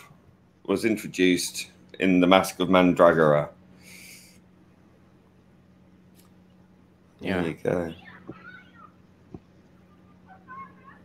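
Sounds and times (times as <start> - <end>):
faint low line hum: 0.0 - 11.0.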